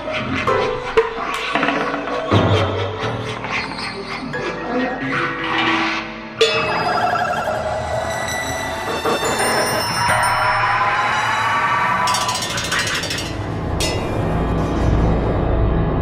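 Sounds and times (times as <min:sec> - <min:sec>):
ringing metallic percussion tones: 0:06.4 - 0:11.2, 0:12.0 - 0:14.5.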